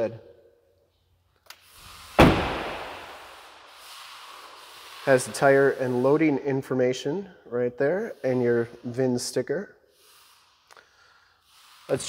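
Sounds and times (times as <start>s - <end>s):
truck door slamming: 2.2s - 3.2s.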